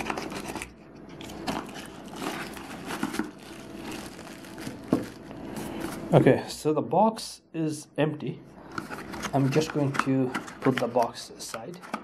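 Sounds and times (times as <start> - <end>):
plastic bag crinkling: 0.0 - 6.2.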